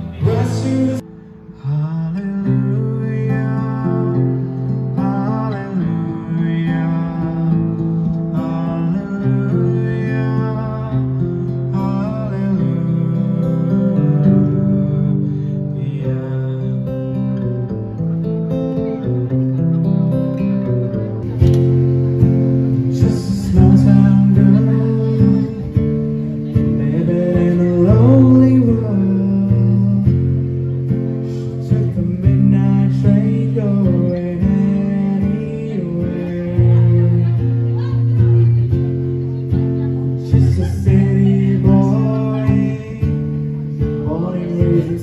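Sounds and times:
man singing: 0:00.0 - 0:17.5, 0:22.6 - 0:38.3, 0:39.8 - 0:45.0
acoustic guitar strumming chords: 0:00.0 - 0:45.0.

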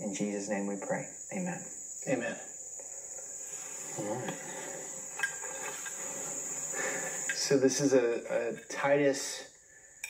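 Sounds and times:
insects trilling: 0:00.0 - 0:10.0.

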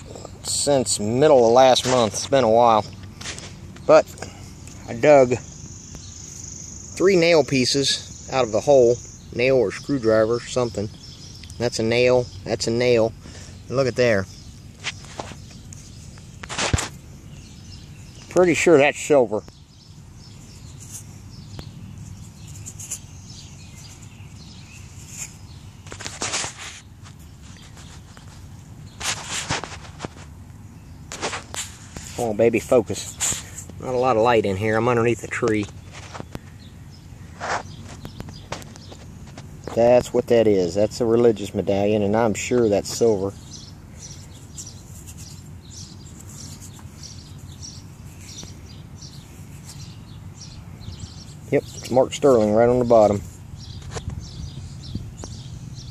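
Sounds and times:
faint bird chirps: 0:00.0 - 0:26.1
low steady background noise: 0:00.0 - 0:55.9
small birds chirping: 0:00.0 - 0:55.9
handling and rustling noise: 0:14.7 - 0:17.1, 0:22.0 - 0:33.9, 0:35.3 - 0:36.5, 0:37.3 - 0:39.9
scratchy rustles: 0:14.7 - 0:17.1, 0:20.3 - 0:21.2, 0:22.0 - 0:30.4, 0:31.1 - 0:33.9, 0:35.7 - 0:36.5, 0:37.3 - 0:39.5, 0:42.7 - 0:54.3.

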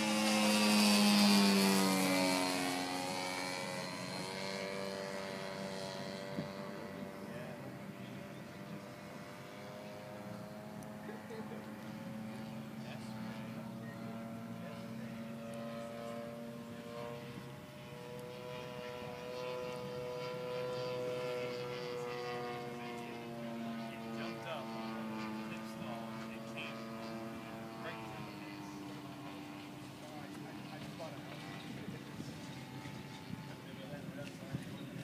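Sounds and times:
model airplane engine: 0:00.0 - 0:35.0.

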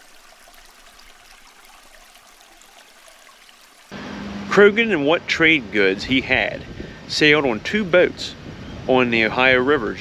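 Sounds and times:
running water rushing: 0:00.0 - 0:04.0.

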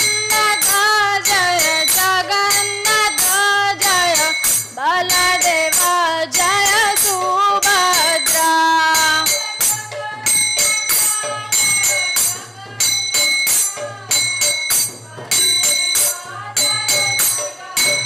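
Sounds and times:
hand cymbals struck: 0:00.0 - 0:18.0
woman singing devotional song: 0:00.0 - 0:18.0.

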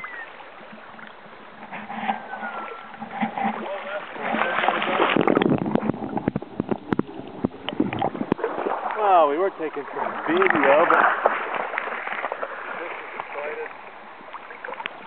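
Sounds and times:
water splashing and gurgling: 0:00.0 - 0:15.0
sharp knocks and sloshes: 0:00.6 - 0:15.0.

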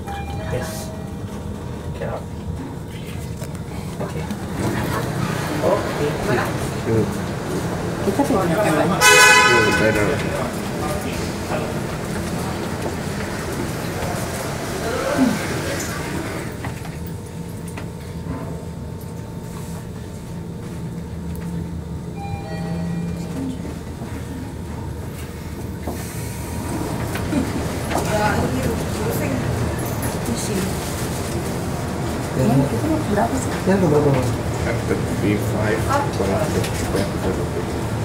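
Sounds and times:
elevator tones: 0:00.0 - 0:02.2, 0:21.5 - 0:34.6
elevator humming: 0:00.0 - 0:38.0.

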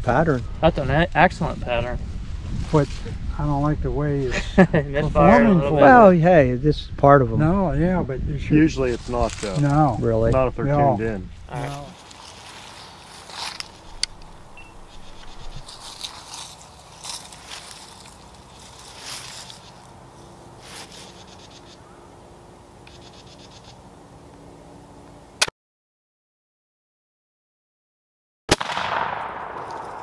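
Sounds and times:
loud gunshot: 0:28.5 - 0:30.0.

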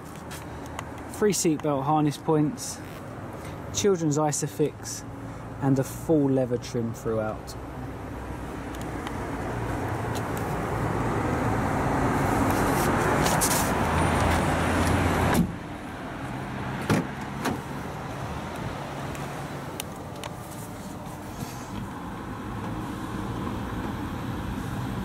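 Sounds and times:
traffic and street noise: 0:00.0 - 0:25.0
car door shutting: 0:14.2 - 0:15.6, 0:16.8 - 0:17.7.

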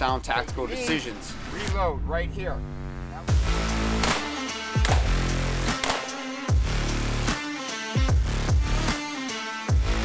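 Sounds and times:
electronic music with heavy bass: 0:00.0 - 0:10.0
sharp percussive hit: 0:03.9 - 0:06.2.

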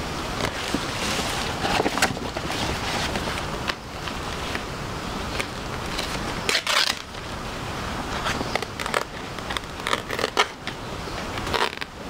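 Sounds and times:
banana leaves rustling: 0:00.0 - 0:12.0.

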